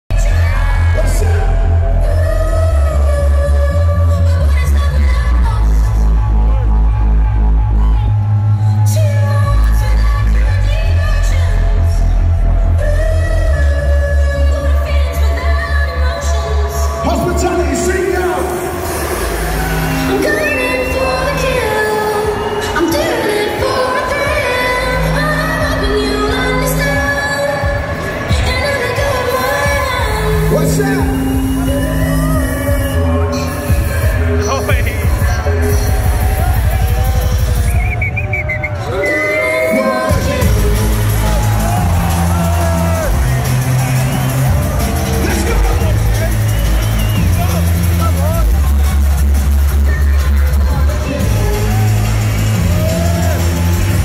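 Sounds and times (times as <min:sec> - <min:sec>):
electronic dance music: 0:00.1 - 0:54.0
crowd shouting: 0:16.5 - 0:54.0.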